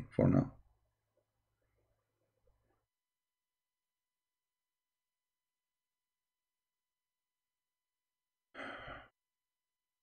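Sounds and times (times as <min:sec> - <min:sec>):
man sighing: 0:08.6 - 0:09.1.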